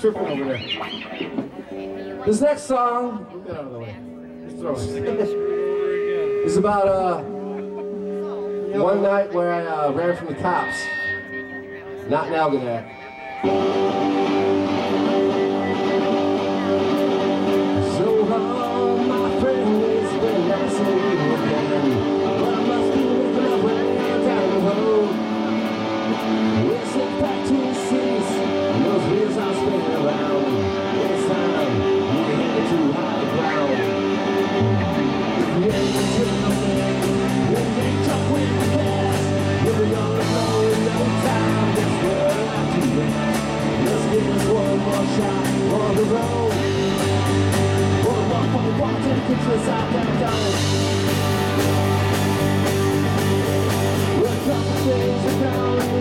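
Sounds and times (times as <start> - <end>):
electric guitars: 0.0 - 56.0
heavy bass line: 0.0 - 56.0
drums with cymbals: 35.4 - 56.0.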